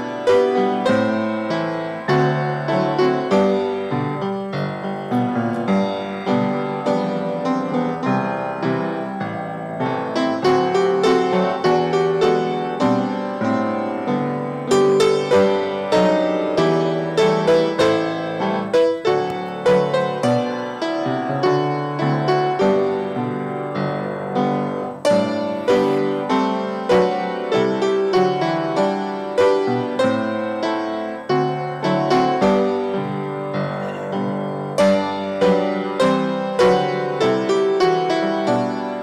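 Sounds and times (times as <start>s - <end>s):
solo piano piece: 0.0s - 39.0s.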